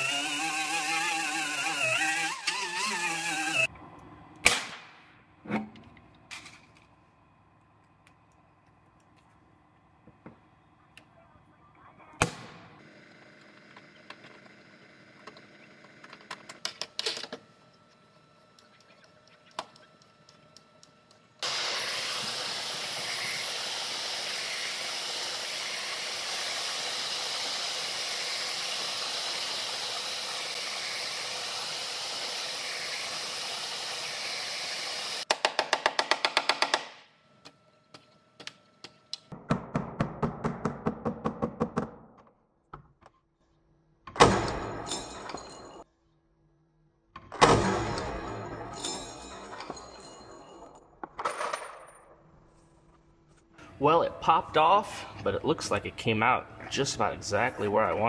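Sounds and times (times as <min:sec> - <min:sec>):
heat gun blowing: 0:00.0 - 0:03.7, 0:21.4 - 0:35.3.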